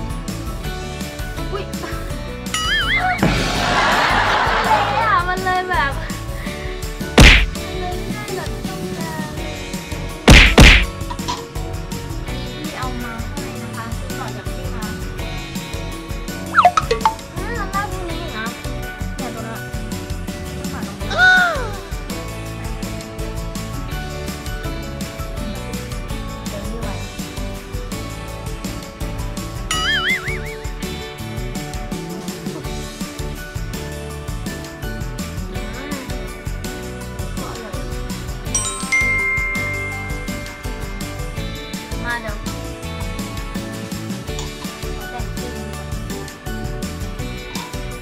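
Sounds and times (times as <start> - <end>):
faint background music: 0.0 - 48.0
knife whacking hard husk: 7.2 - 7.6, 10.3 - 11.0
high wobbling tone: 16.6 - 17.2, 29.7 - 30.5.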